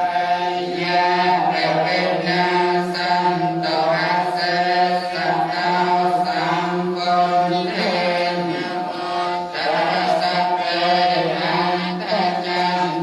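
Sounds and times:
person chanting low notes: 0:00.0 - 0:13.0.

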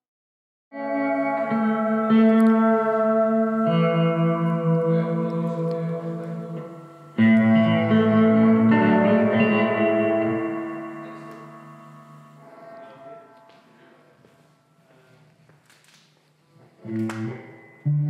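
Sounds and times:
reverberant guitar chords: 0:00.8 - 0:14.9, 0:16.8 - 0:18.0.

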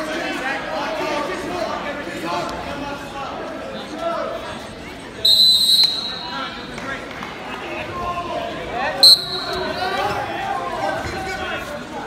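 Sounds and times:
referee whistle blasts: 0:05.2 - 0:06.5, 0:09.0 - 0:09.8.

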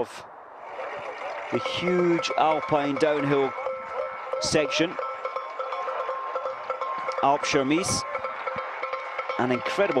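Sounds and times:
crowd ambience: 0:00.0 - 0:10.0
cowbells ringing: 0:01.1 - 0:10.0.

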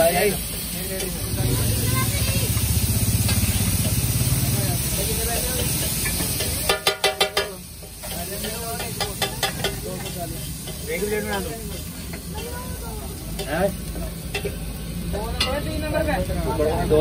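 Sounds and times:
spatula clanking on griddle: 0:00.0 - 0:01.3, 0:02.1 - 0:15.8
food sizzling: 0:00.0 - 0:17.0
metal spatula scraping on griddle: 0:03.0 - 0:04.3, 0:04.9 - 0:14.7.

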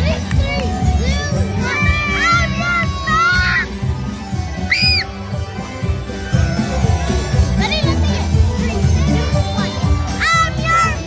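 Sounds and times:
children calling out: 0:00.0 - 0:11.0
crowd voices: 0:00.0 - 0:11.0
parade music with synthesizer notes: 0:00.0 - 0:11.0.

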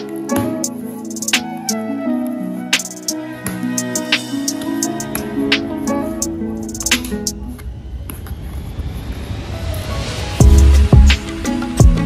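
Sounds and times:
background music: 0:00.0 - 0:08.1, 0:09.4 - 0:12.0
rising whoosh: 0:06.3 - 0:11.7.

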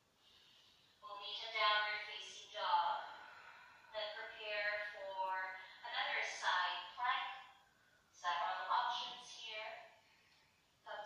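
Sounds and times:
woman speaking: 0:01.0 - 0:03.1, 0:03.9 - 0:07.3, 0:08.2 - 0:09.8.

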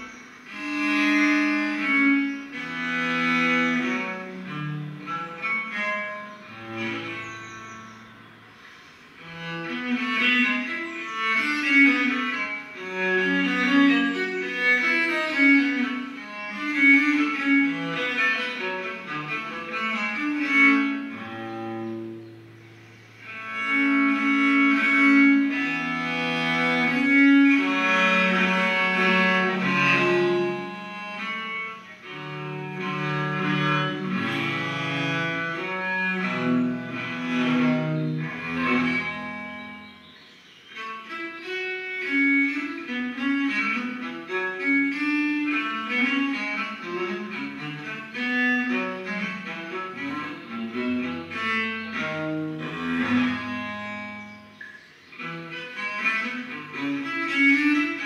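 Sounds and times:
bowed viola da gamba: 0:00.0 - 0:58.0.

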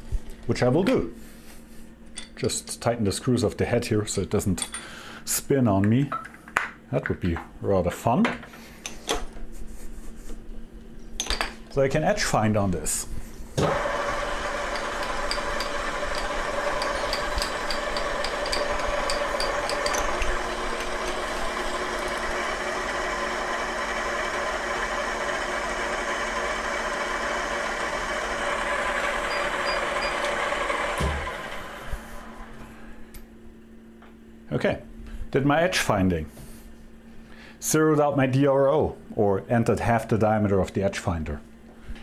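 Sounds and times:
milling machine spindle running: 0:13.6 - 0:32.6.

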